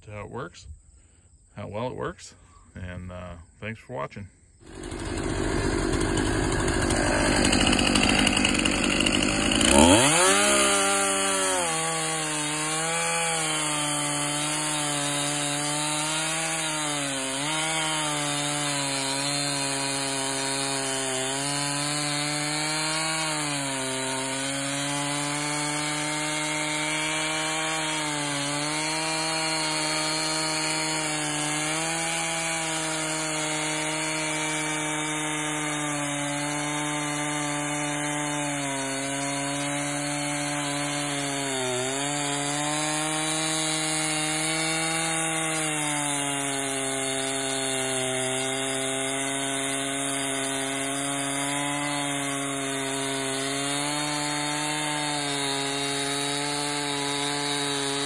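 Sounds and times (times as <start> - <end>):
chainsaw cutting log: 4.6 - 58.0.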